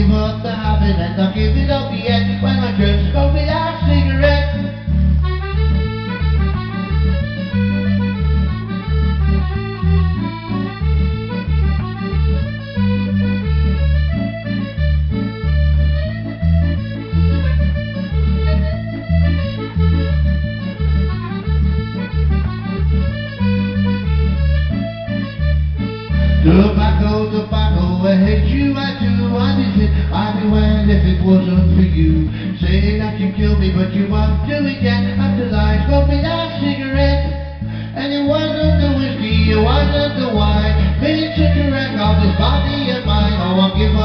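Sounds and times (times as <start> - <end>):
piano accordion folk melody: 0.0 - 44.0.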